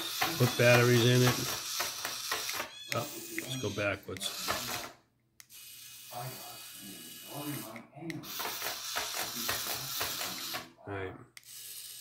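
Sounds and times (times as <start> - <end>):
plastic legs ticking on wood: 0.0 - 3.6
toy electric motor whirring: 0.0 - 10.8, 11.4 - 12.0.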